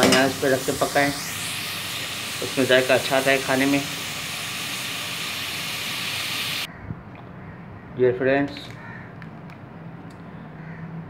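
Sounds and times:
food sizzling in oil: 0.0s - 6.7s.

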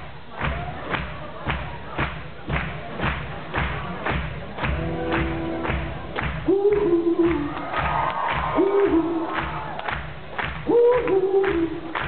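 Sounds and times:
steady percussion beat of thuds: 0.0s - 12.0s.

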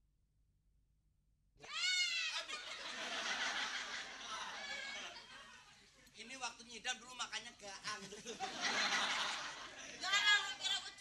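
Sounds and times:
high-pitched vocal cry: 1.6s - 2.5s.

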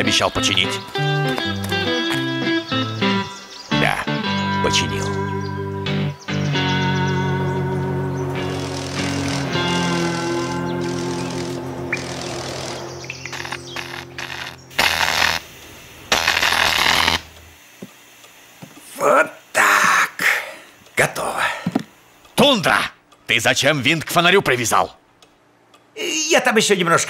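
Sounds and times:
background music with sustained chords: 0.0s - 16.1s
cartoon welding hissing crackle: 8.4s - 9.8s, 10.4s - 21.3s.

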